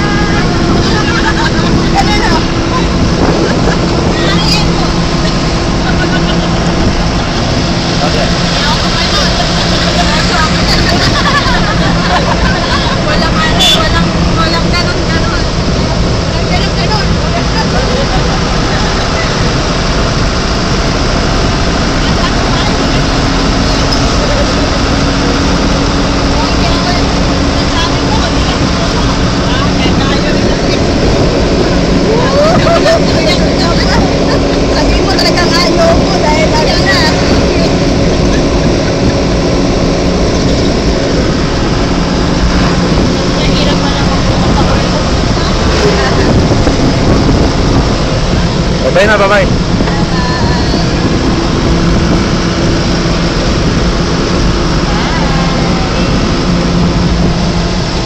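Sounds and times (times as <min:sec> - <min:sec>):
people talking: 0:00.0 - 0:06.9, 0:08.0 - 0:19.8, 0:21.8 - 0:25.4, 0:26.2 - 0:38.8, 0:42.5 - 0:51.1, 0:54.7 - 0:56.8
vehicle engine and road drone: 0:00.0 - 0:58.0.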